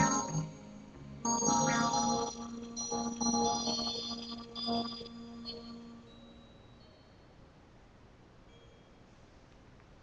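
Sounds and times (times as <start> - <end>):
electronic keyboard chords: 0.0 - 7.0.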